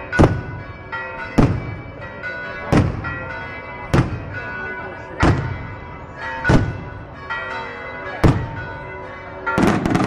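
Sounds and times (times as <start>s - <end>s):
church bells ringing: 0.0s - 10.0s.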